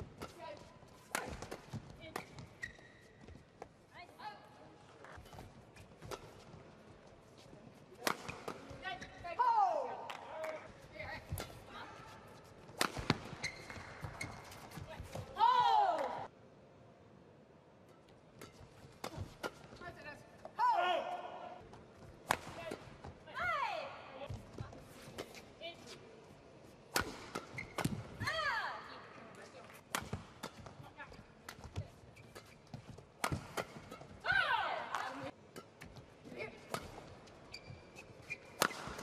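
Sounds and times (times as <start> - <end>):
racket striking shuttlecock: 12.8 - 13.4, 26.9 - 28.2, 33.2 - 34.2, 38.5 - 39.0.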